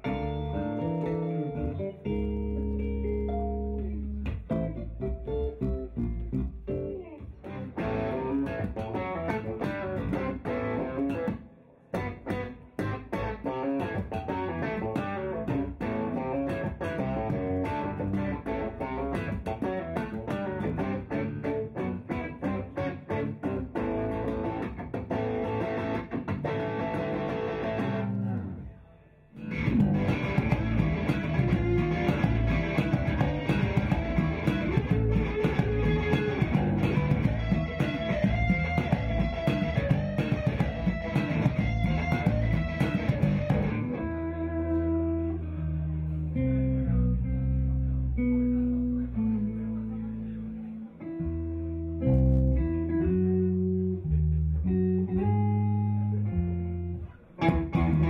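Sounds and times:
bass guitar: 0.0s - 58.0s
electric guitar: 0.0s - 58.0s.

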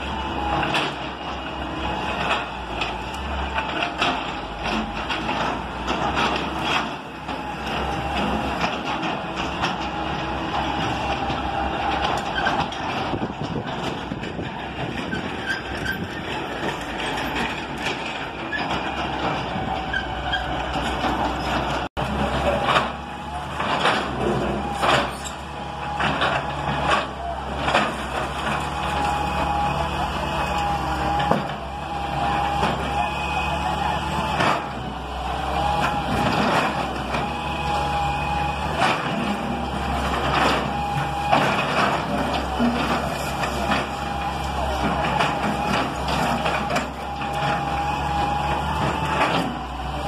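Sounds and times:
excavator diesel engine running: 0.0s - 50.0s.

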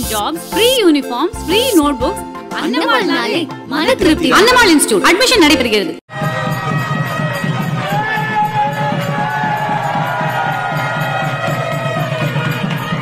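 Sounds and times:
crowd cheering and calling out: 6.1s - 13.0s
rapid drumming: 6.2s - 13.0s.

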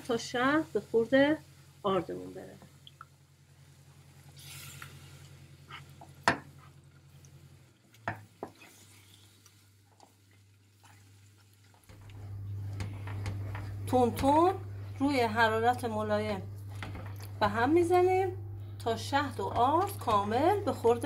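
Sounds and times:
faint sizzle: 0.0s - 21.0s
low steady hum: 0.0s - 21.0s
wooden spoon stirring in a pan: 3.6s - 15.2s.

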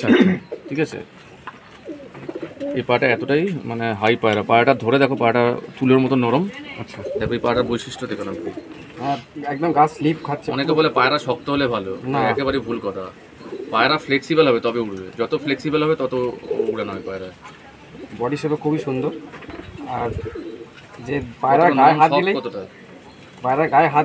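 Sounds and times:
pigeons cooing: 0.0s - 24.0s.

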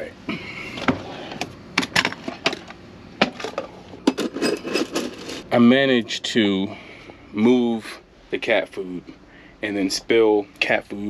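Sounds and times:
objects clicking and knocking: 0.8s - 5.4s.

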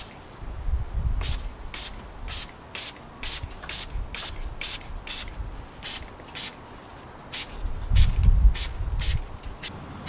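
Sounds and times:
spray bottle squirting: 1.2s - 6.6s, 7.2s - 9.7s.

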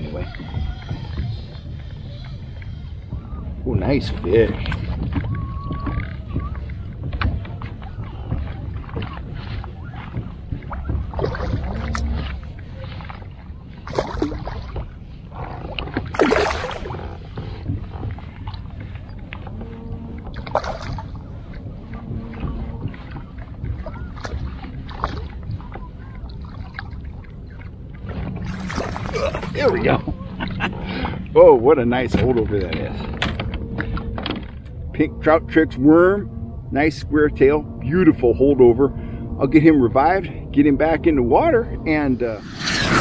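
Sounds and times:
water noise: 0.0s - 43.0s
wind: 0.0s - 43.0s
knocks and clicks of fishing gear: 4.2s - 13.1s, 32.1s - 34.8s.

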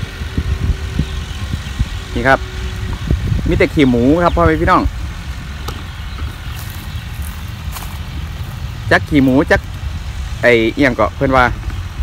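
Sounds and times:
distant tractor engine rumble: 0.0s - 12.0s.

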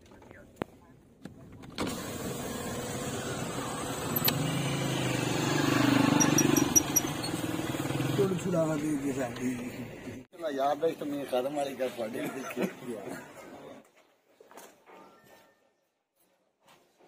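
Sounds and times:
car engine and road noise: 1.2s - 10.3s.

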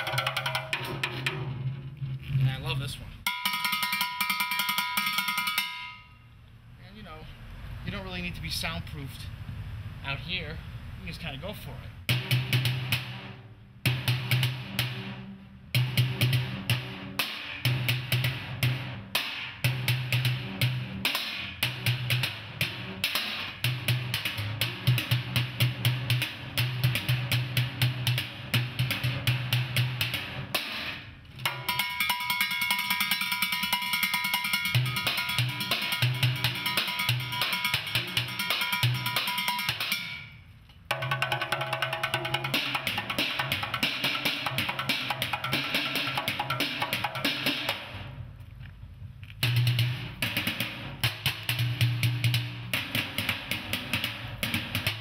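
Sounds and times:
metal ringing: 3.3s - 6.3s, 31.5s - 40.5s.

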